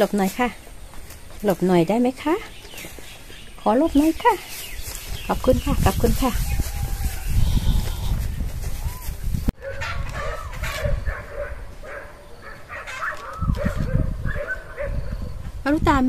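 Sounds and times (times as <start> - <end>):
wind rumble on microphone: 4.5 - 12.0, 12.6 - 16.0
faint farm animal calls: 5.3 - 9.1.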